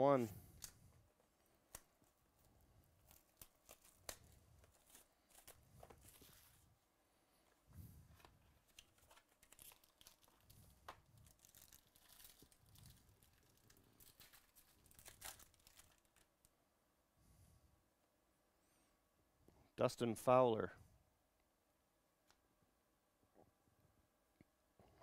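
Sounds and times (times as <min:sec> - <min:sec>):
tearing and crinkling packaging: 0:01.7 - 0:06.7, 0:08.1 - 0:16.5.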